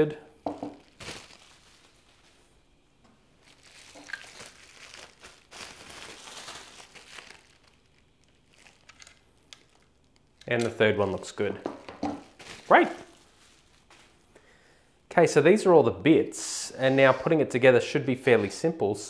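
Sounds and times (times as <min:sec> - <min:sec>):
plastic packaging crinkling: 0:00.4 - 0:02.5, 0:03.4 - 0:14.3.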